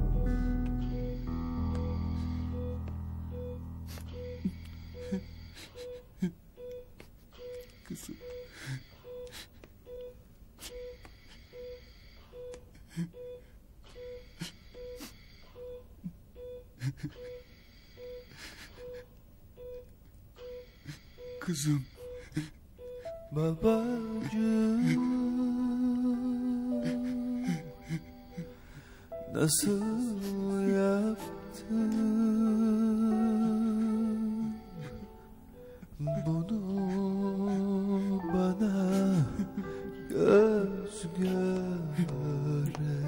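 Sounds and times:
patient monitor beeping: 0.0 - 43.0
person whimpering and moaning: 3.9 - 6.4, 23.6 - 28.6, 30.1 - 43.0
man sobbing: 3.9 - 8.5, 16.0 - 17.4, 23.3 - 28.7, 29.6 - 43.0.

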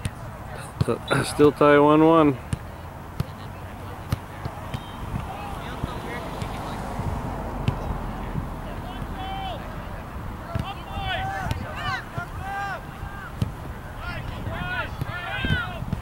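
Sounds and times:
wind noise on microphone: 4.8 - 8.7, 9.7 - 16.0
people shouting short calls: 8.7 - 9.8, 10.4 - 16.0.

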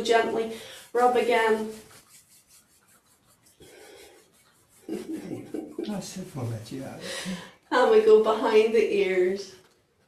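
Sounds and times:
palms rubbing together: 0.0 - 8.7.

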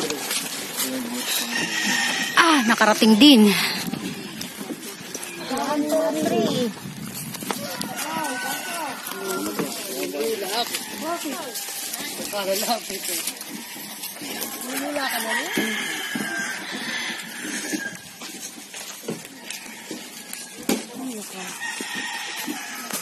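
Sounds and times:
group of people talking: 0.0 - 23.0.

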